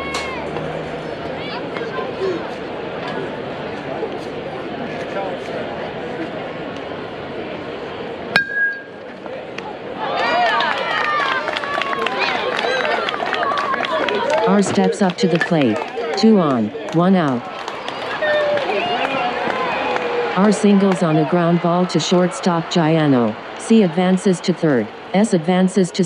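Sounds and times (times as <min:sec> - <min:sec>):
people shouting and cheering: 0:00.0 - 0:03.3, 0:09.2 - 0:26.0
background voices chattering: 0:00.0 - 0:26.0
metal bat hitting ball: 0:08.4 - 0:09.0.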